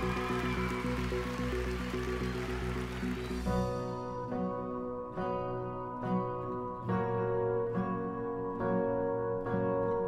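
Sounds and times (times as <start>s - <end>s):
audience applauding: 0.0s - 3.6s.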